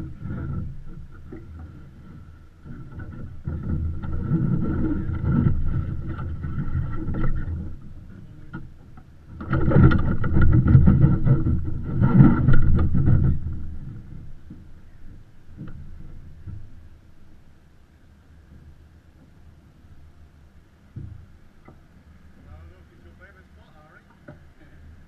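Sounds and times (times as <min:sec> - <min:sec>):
wind on microphone: 0:00.0 - 0:17.2
water rushing along hull: 0:00.0 - 0:25.0.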